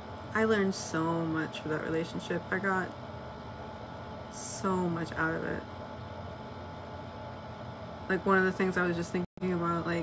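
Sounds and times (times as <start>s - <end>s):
room tone hum and hiss: 0.0s - 10.0s.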